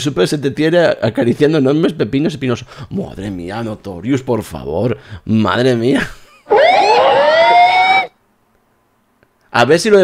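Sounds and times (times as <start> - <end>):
rising siren-like tone: 6.5 - 8.1.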